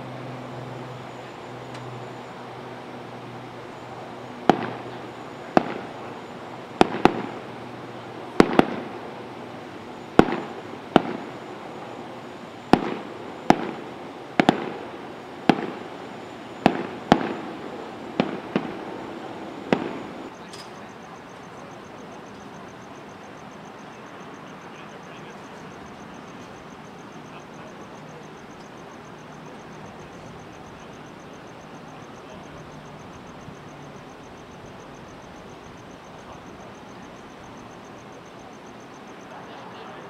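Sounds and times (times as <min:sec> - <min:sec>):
fireworks bangs with echo: 0:04.3 - 0:20.3.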